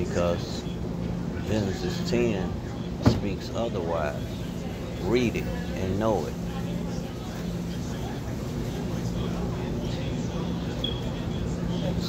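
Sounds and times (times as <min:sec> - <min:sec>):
rush of background noise: 0:00.0 - 0:12.0.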